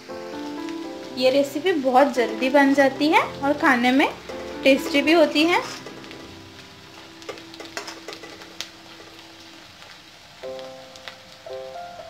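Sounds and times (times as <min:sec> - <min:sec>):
background music: 0:00.0 - 0:09.5, 0:10.4 - 0:12.0
vegetables sizzling in oil: 0:00.0 - 0:12.0.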